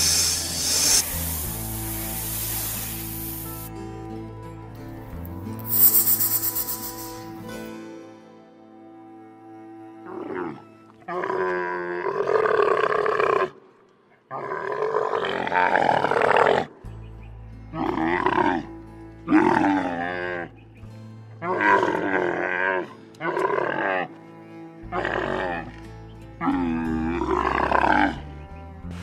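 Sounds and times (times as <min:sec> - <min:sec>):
soft background music: 0:00.0 - 0:12.2, 0:16.8 - 0:29.0
camel groaning calls: 0:17.7 - 0:20.6, 0:21.4 - 0:25.8, 0:26.4 - 0:28.3.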